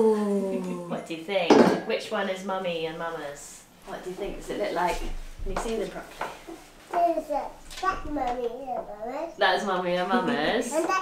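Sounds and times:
voice holding gliding note: 0.0 - 1.0.

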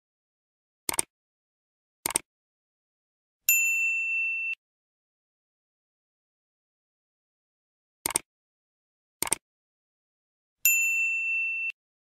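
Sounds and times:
notification bell ding: 3.5 - 4.6, 10.7 - 11.8.

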